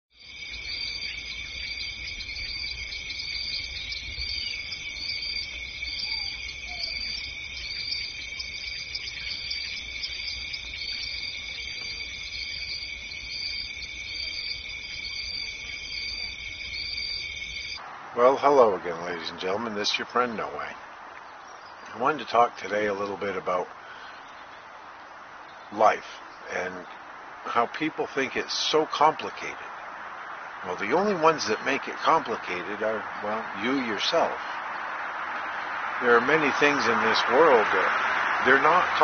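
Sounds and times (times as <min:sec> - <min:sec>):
insects chirping: 0:00.1 - 0:39.0.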